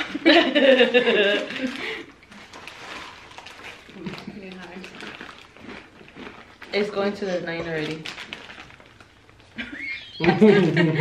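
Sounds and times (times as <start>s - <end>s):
plastic chip bag crinkling: 1.1s - 9.6s.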